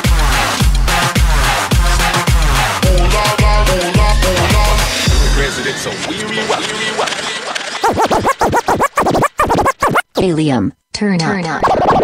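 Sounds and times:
hip hop music: 0.0s - 9.6s
turntable scratching: 0.0s - 10.3s, 11.3s - 12.0s.

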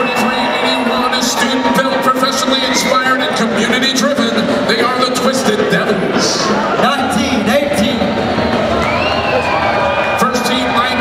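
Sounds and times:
man talking: 0.0s - 8.2s, 10.1s - 11.0s
crowd chatter: 0.0s - 11.0s.

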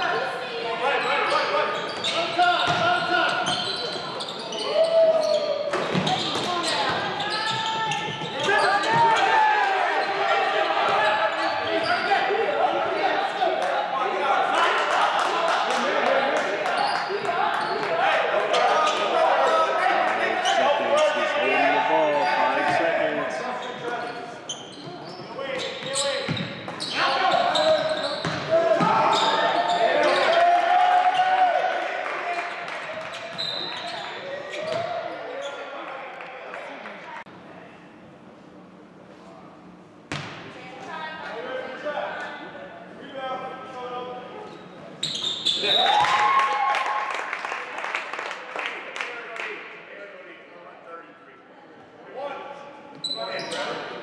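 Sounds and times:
indistinct shouts echoing: 0.0s - 23.7s, 26.9s - 36.0s.

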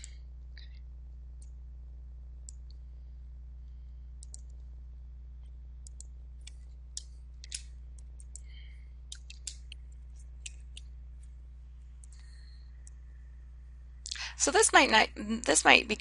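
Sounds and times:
steady low hum: 0.0s - 16.0s
computer mouse clicks: 4.2s - 4.7s, 5.8s - 10.9s, 12.0s - 13.0s.

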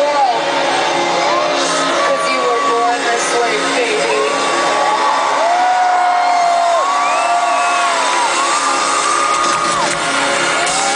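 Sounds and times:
amplified pop music: 0.0s - 10.9s
fans whooping: 0.3s - 10.9s.

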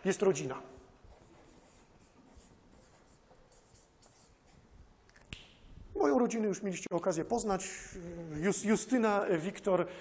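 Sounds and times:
marker scratching on paper: 1.0s - 4.7s.

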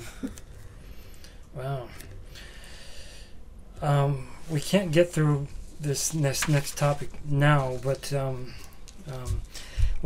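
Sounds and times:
person speaking: 3.8s - 9.5s.

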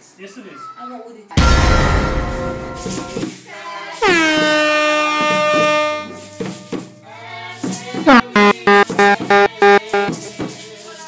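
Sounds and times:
loud horn blast: 1.4s - 3.2s, 4.0s - 6.9s, 8.1s - 10.2s.

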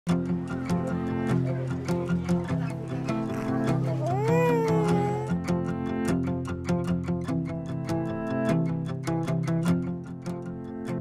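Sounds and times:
plucked guitar music: 0.1s - 11.0s
infant crying: 3.4s - 5.4s.

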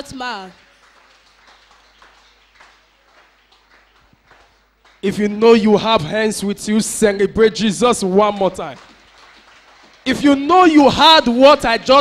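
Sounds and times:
scattered hand clapping: 0.0s - 5.4s, 8.0s - 12.0s.

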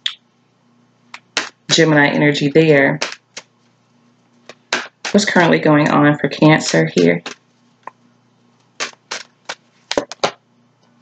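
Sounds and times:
sharp card snaps: 1.1s - 1.6s, 3.0s - 3.5s, 8.8s - 10.4s
cards being handled: 4.4s - 5.2s, 8.8s - 10.4s.

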